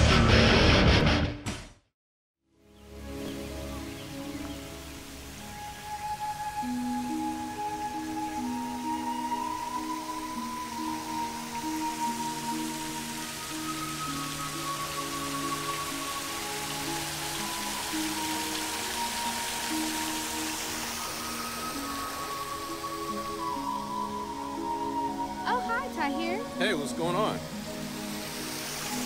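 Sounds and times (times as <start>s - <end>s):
soft music with held notes: 2.5s - 29.0s
fountain water splashing: 3.2s - 29.0s.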